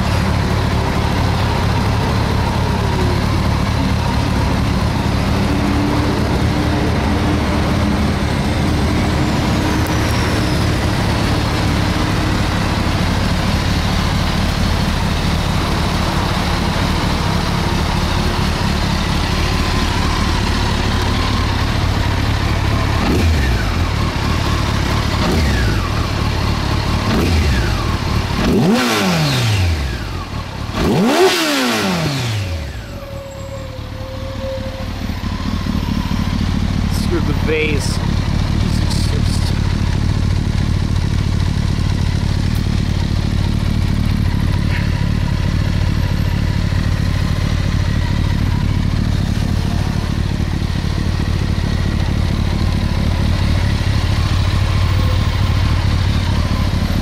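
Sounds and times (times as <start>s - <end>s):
motorcycle engine idling and revving: 0.0s - 57.0s.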